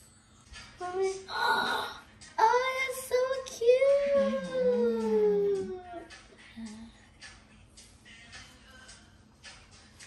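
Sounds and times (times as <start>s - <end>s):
high-pitched voice singing: 1.0s - 6.9s.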